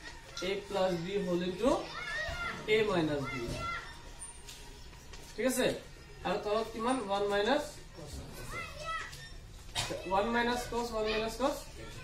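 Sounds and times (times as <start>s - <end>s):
low hum of classroom noise: 0.0s - 12.0s.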